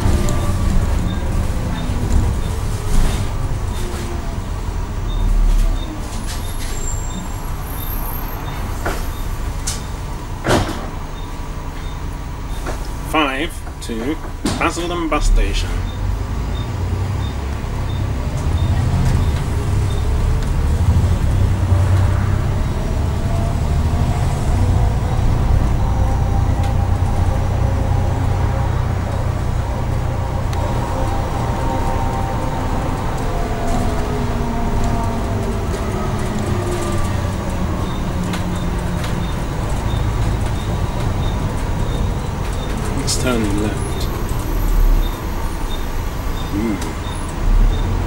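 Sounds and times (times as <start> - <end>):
bus engine rumble: 0.0 - 48.0
road noise: 0.0 - 48.0.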